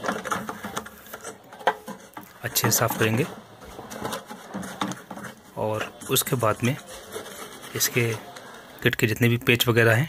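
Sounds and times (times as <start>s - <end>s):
wires and connectors rattling: 0.0s - 8.6s.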